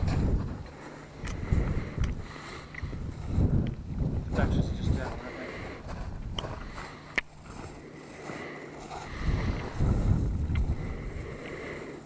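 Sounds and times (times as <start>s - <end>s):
wind buffeting microphone: 0.0s - 7.8s, 8.8s - 11.8s.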